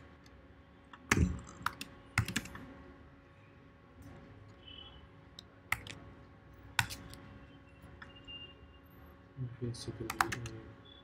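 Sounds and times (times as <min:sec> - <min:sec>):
computer keyboard clicks: 0:01.0 - 0:02.6, 0:05.7 - 0:06.0, 0:06.8 - 0:07.2, 0:10.1 - 0:10.6.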